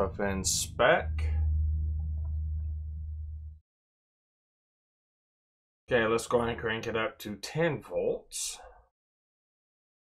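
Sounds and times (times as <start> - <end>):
steady low hum: 0.0 - 3.6.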